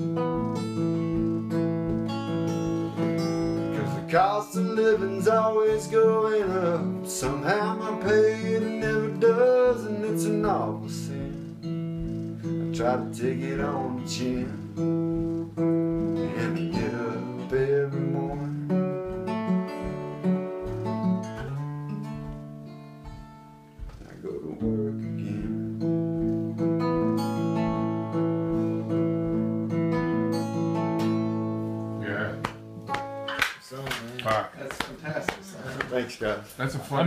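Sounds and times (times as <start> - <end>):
acoustic guitar strumming chords: 0.0 - 33.7.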